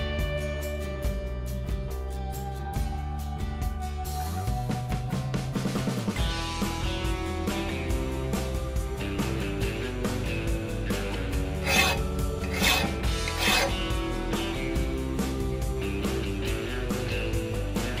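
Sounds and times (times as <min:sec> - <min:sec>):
hand file rasping on steel blade: 0:11.6 - 0:13.8.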